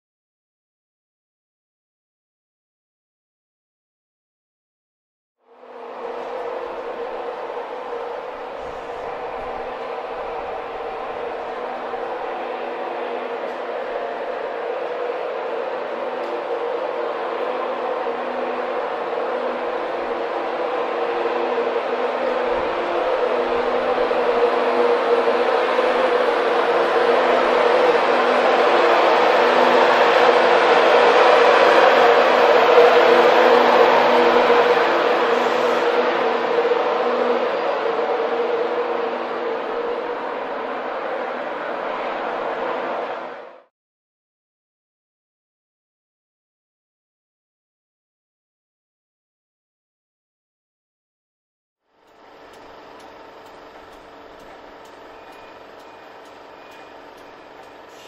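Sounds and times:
electric locomotive humming: 0:05.4 - 0:43.7, 0:51.9 - 0:58.0
train rail noise: 0:05.5 - 0:43.7, 0:52.0 - 0:58.0.

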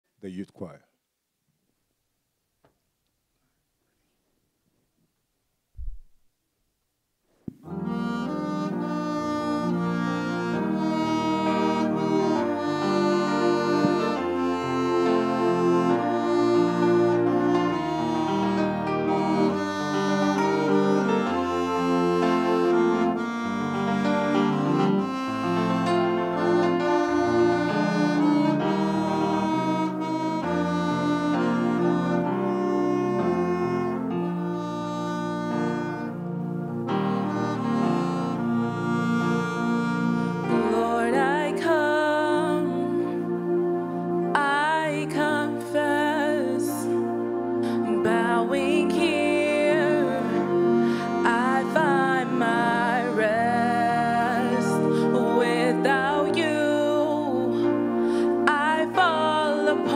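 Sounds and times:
saxophone slow melody: 0:07.6 - 0:59.9.

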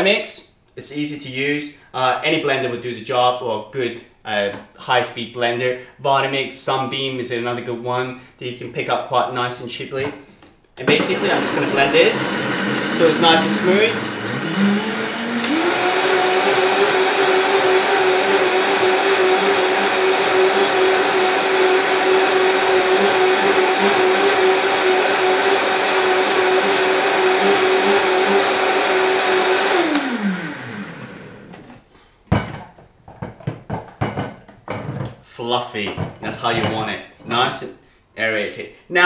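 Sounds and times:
blender motor running: 0:10.9 - 0:31.7.

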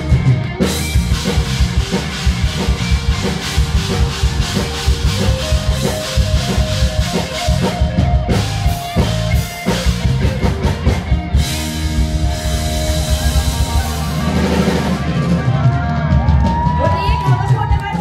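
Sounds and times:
drum kit beat: 0:00.0 - 0:18.0
heavy bass: 0:00.0 - 0:18.0
live band playing: 0:00.0 - 0:18.0.

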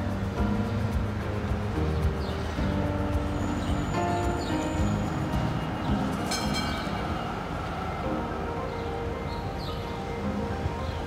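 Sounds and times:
rail traffic rumble: 0:00.0 - 0:11.0
high squeal: 0:03.3 - 0:10.1.

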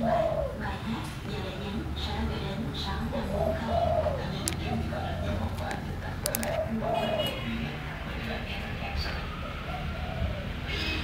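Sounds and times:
dove cooing: 0:00.0 - 0:01.0, 0:02.8 - 0:07.7, 0:09.0 - 0:10.7.

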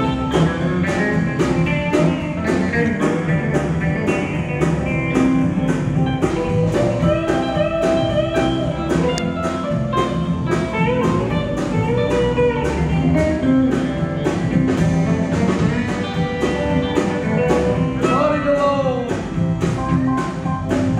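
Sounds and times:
bass: 0:00.0 - 0:20.9
electric guitar with bent notes: 0:00.0 - 0:20.9
steady drum beat: 0:00.0 - 0:20.9.

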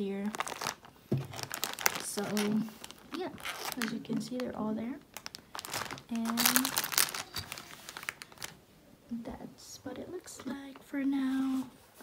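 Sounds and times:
plastic packaging crinkling: 0:00.0 - 0:08.6.

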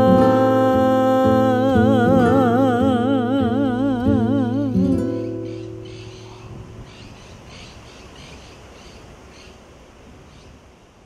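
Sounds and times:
low hiss: 0:00.0 - 0:11.0
short high chirping calls: 0:05.0 - 0:09.6.

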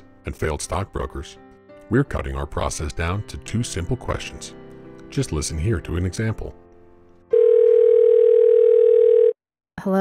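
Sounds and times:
telephone ringback tone: 0:07.3 - 0:09.4.

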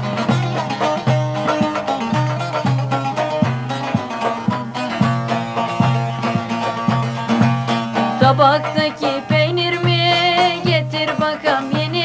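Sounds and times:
plucked string melody: 0:00.0 - 0:12.0.

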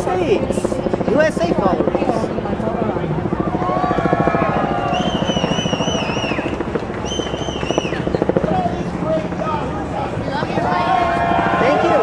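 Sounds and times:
distorted chopped crowd voices: 0:00.0 - 0:12.0.

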